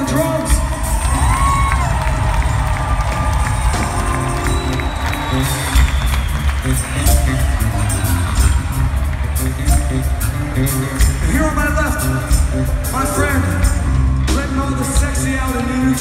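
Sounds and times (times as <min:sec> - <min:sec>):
crowd cheering: 0:00.0 - 0:11.7
heavy drums and bass: 0:00.0 - 0:16.0
live rock band playing: 0:00.0 - 0:16.0.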